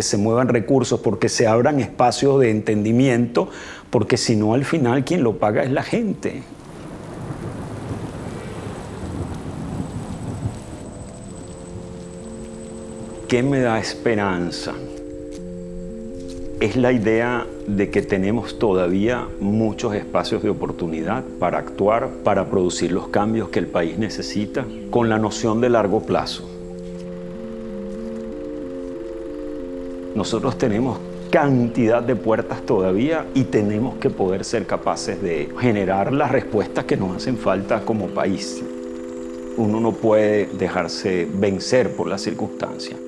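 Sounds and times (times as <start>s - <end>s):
soft sustained music notes: 0.0s - 43.0s
rain falling: 6.3s - 14.1s
low thunder: 6.5s - 12.0s.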